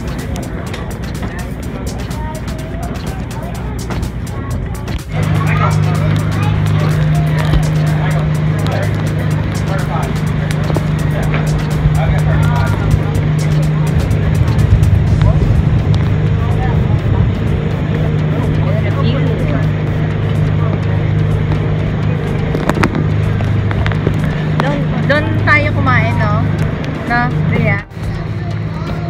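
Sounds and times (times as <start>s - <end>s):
boat engine drone: 0.0s - 29.0s
faint voices talking: 0.0s - 29.0s.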